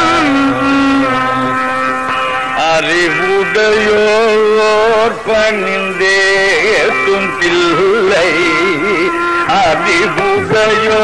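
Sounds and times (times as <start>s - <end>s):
long held melodic note: 0.0s - 2.8s, 8.1s - 10.3s.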